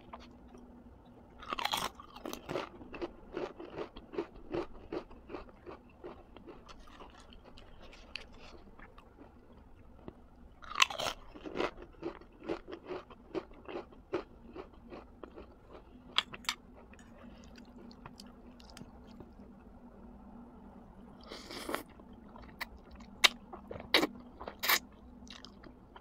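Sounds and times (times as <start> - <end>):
person chewing food: 1.4 - 19.4, 21.2 - 26.0.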